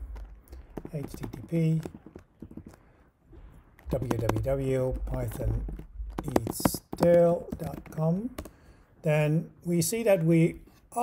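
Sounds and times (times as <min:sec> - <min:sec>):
computer keyboard typing: 0:00.0 - 0:03.0, 0:03.8 - 0:08.6.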